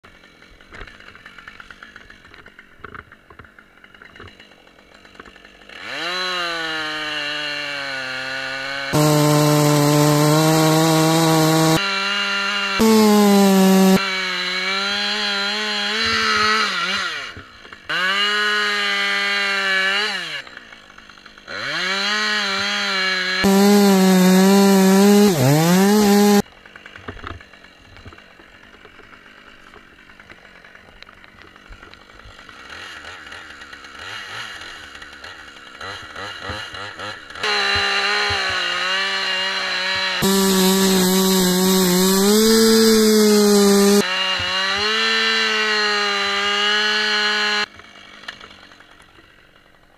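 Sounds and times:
chainsaw cutting into wood: 0.1s - 49.9s.

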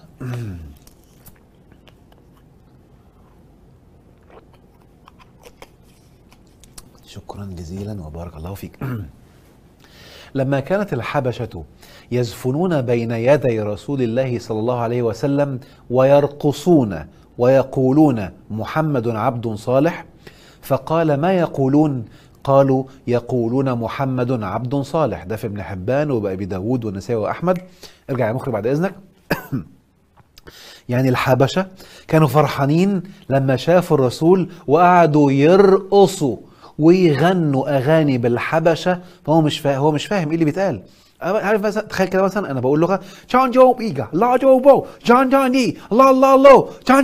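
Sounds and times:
man clearing his throat: 0.0s - 0.8s, 8.8s - 9.2s, 29.3s - 29.8s
man speaking: 6.8s - 9.2s, 20.6s - 29.1s, 30.9s - 47.0s.

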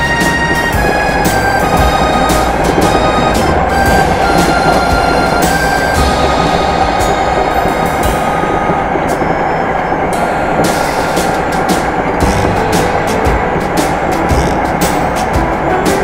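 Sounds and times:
train running noise: 0.0s - 16.0s
wheels clicking on rails: 0.0s - 16.0s.

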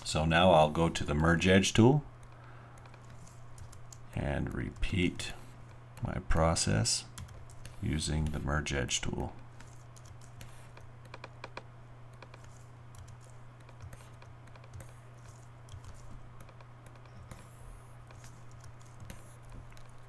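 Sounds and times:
steady low hum: 0.0s - 20.0s
keyboard and mouse clicks: 2.2s - 4.1s, 9.6s - 20.0s.

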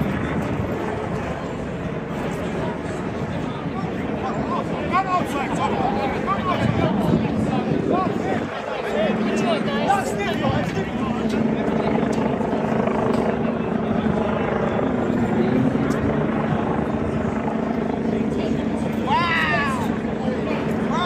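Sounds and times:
crowd chatter: 0.0s - 21.0s
helicopter drone overhead: 0.0s - 21.0s.

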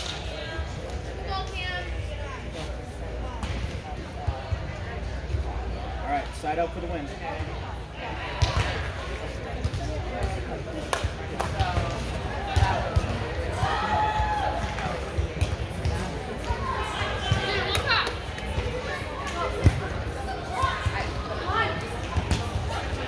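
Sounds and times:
players calling and chattering: 0.0s - 23.0s.

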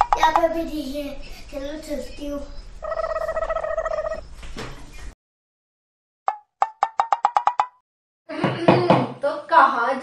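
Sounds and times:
girl's voice: 0.2s - 2.6s, 8.3s - 10.0s.

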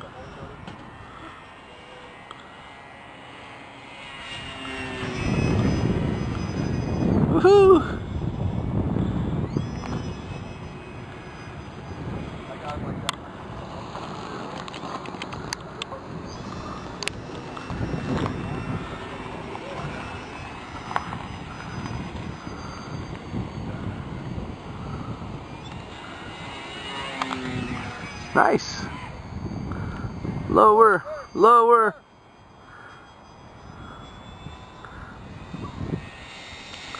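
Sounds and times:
model plane engine droning: 0.0s - 36.9s.

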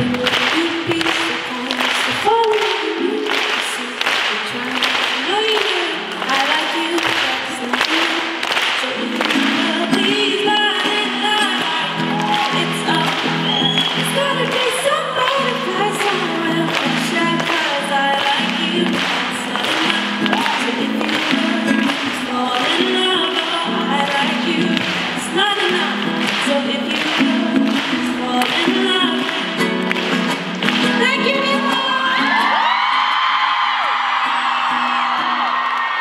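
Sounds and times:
woman singing into microphone: 0.0s - 30.1s, 30.8s - 33.0s
ukulele strumming: 0.0s - 32.9s.

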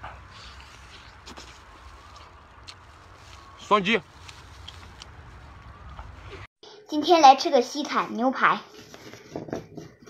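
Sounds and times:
chewing meat: 0.0s - 3.6s.

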